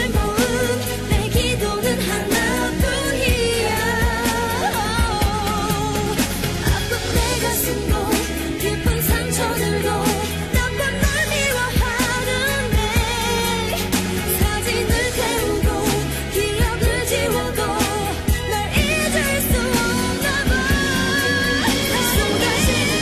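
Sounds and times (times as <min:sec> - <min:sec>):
pop song with sung vocals: 0:00.0 - 0:23.0.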